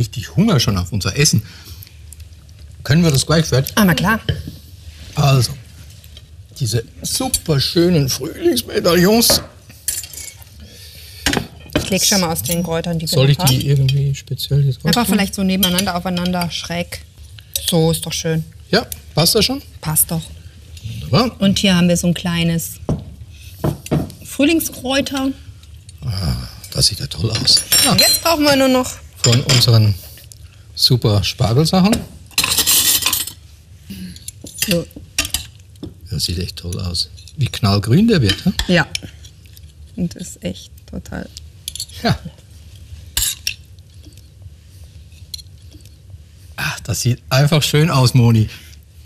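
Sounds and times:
faint room hiss: 0.0s - 49.0s
utensils scraping and clinking pan: 26.7s - 29.8s, 32.3s - 33.4s.

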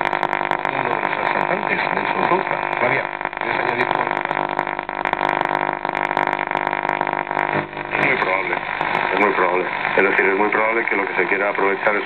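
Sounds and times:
held tones from radio speaker: 0.0s - 12.0s
radio static and interference: 0.0s - 12.0s
talk radio speech: 0.0s - 12.0s.

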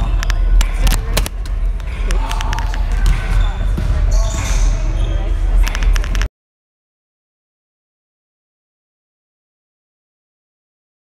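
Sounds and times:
murmur of people talking: 0.0s - 6.3s
basketballs bouncing on hardwood: 2.9s - 4.4s.

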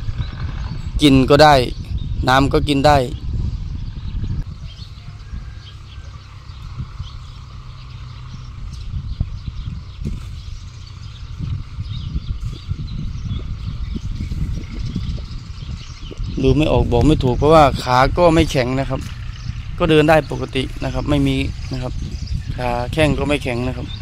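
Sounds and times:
wind rumble on microphone: 0.0s - 24.0s.

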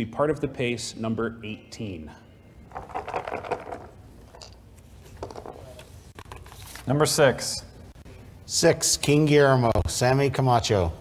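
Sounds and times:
pills rattling in a bottle: 2.7s - 4.6s.

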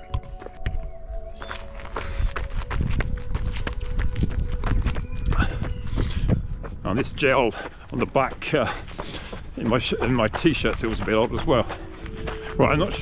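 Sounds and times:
footsteps on dirt track: 0.0s - 13.0s
wind rumbling on microphone: 0.0s - 13.0s.

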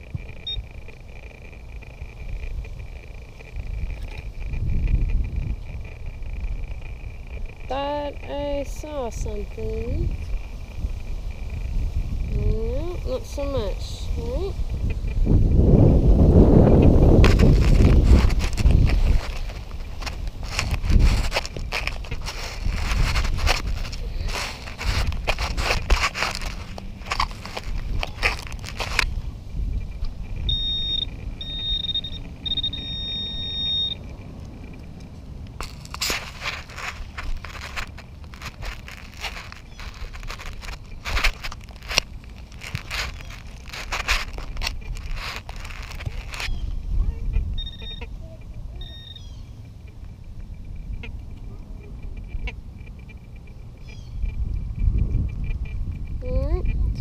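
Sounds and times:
pinpointer short high beeps: 0.4s - 0.7s, 30.5s - 34.0s, 47.3s - 48.2s, 48.8s - 49.2s
hand digger scraping mulch: 17.0s - 29.2s, 35.5s - 46.6s.

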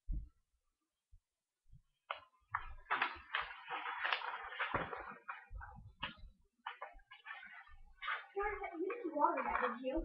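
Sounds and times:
paper pages rustling: 2.0s - 10.0s.

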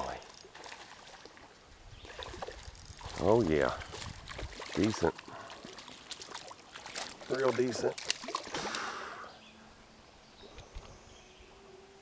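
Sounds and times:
water washing: 2.2s - 9.0s
fish splashing at surface: 3.9s - 8.9s.

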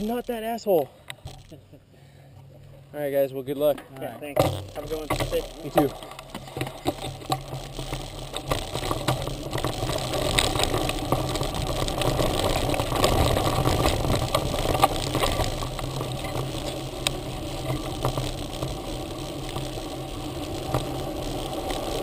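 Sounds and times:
bike tyre rumbling on dirt: 0.0s - 1.6s, 4.2s - 22.0s
sharp clicks and knocks: 3.7s - 18.8s.

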